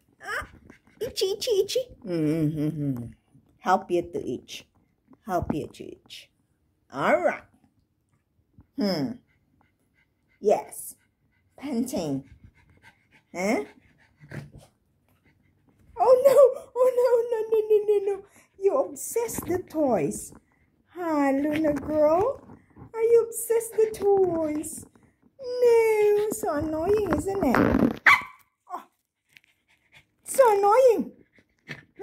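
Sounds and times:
dog panting: 0:00.2 - 0:02.0, 0:08.6 - 0:17.3, 0:21.4 - 0:25.0, 0:29.2 - 0:32.0
dog barking: 0:28.0 - 0:28.4.

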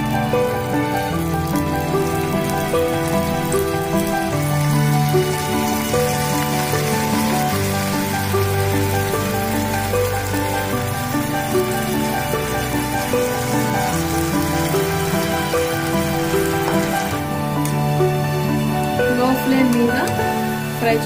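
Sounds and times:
background music of held notes: 0:00.0 - 0:21.0
food sizzling in hot oil: 0:00.0 - 0:21.0.

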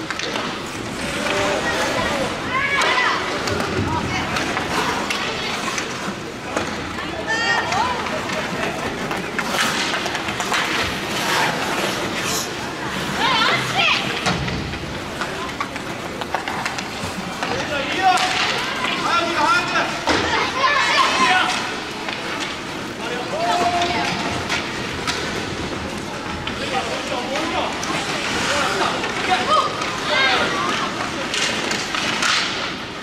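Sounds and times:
hockey stick clicks: 0:00.0 - 0:00.6, 0:09.0 - 0:12.0, 0:14.1 - 0:19.0, 0:23.6 - 0:25.7, 0:30.7 - 0:32.8
skates scraping on ice: 0:00.0 - 0:33.0.

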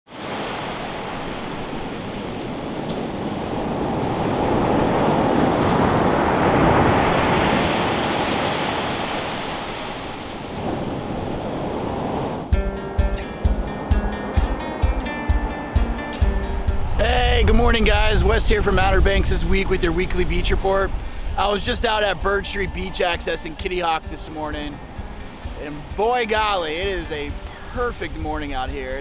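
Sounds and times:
ocean surf breaking on beach: 0:00.1 - 0:29.0
music with a beat: 0:12.5 - 0:16.8.

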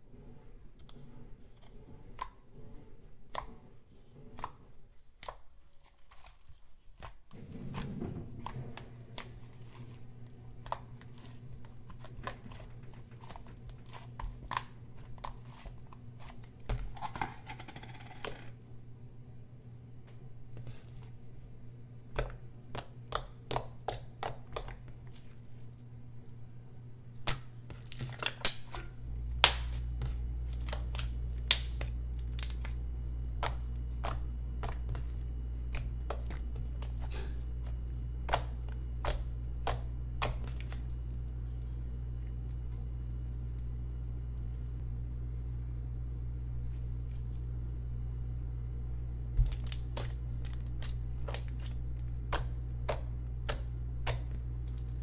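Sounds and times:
low steady hum: 0:00.0 - 0:55.0.

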